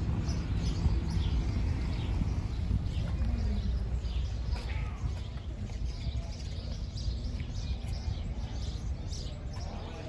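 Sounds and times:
low outdoor rumble: 0:00.0 - 0:10.0
small birds chirping: 0:00.0 - 0:10.0.

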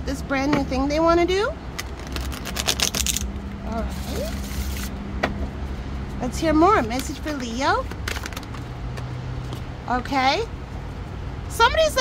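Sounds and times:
steady low hum: 0:00.0 - 0:11.7
cards being shuffled: 0:01.8 - 0:03.3.

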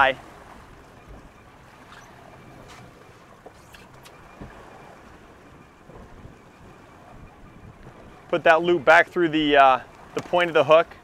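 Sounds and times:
sea noise: 0:00.0 - 0:11.0
wind: 0:00.0 - 0:11.0.

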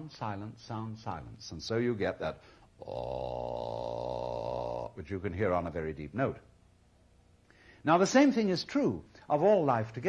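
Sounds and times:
man holding deep ah note: 0:02.8 - 0:05.0.

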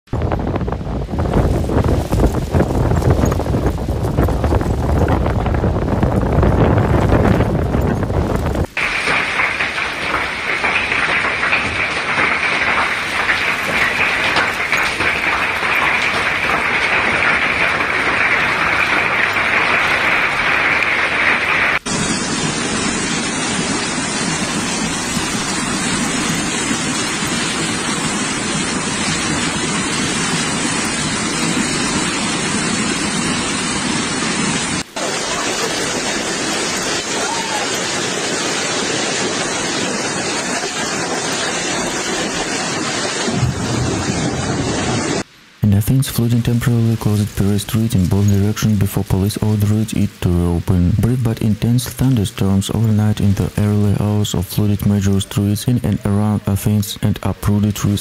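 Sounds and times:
wind buffeting microphone: 0:00.1 - 0:45.3
heavy downpour: 0:00.1 - 0:58.0
heavy rain on a tiled roof: 0:00.1 - 0:58.0.

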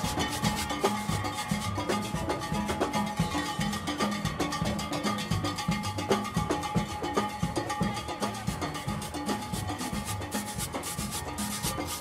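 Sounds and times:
scratchy percussion strokes: 0:00.0 - 0:12.0
steelband music: 0:00.0 - 0:12.0.

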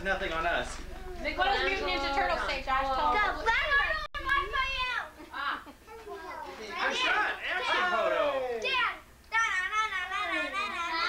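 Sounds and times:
excited voices: 0:00.9 - 0:11.0.

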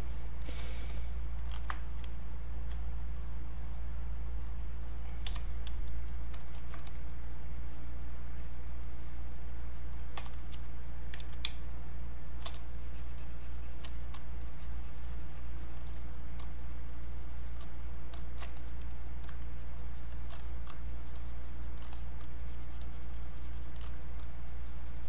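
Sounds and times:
low electrical hum: 0:00.0 - 0:25.0.

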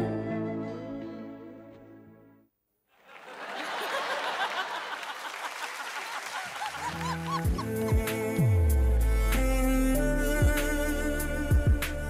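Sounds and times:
background music with sliding notes: 0:06.8 - 0:12.0.

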